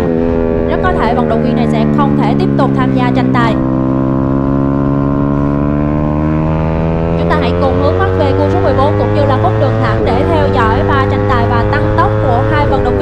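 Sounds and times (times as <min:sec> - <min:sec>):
motorcycle engine high revs: 0:00.0 - 0:13.0.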